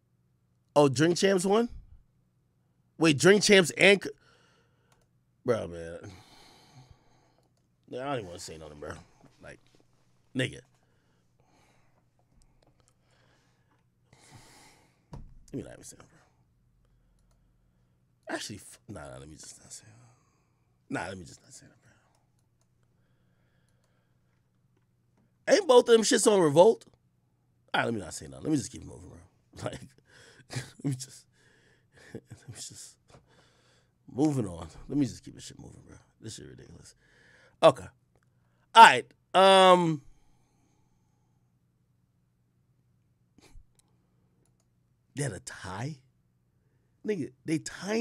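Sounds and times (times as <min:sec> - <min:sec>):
computer mouse clicking: 0:04.9 - 0:05.1, 0:17.1 - 0:17.4
faint clicks: 0:04.9 - 0:05.2, 0:16.8 - 0:17.4, 0:43.7 - 0:44.8.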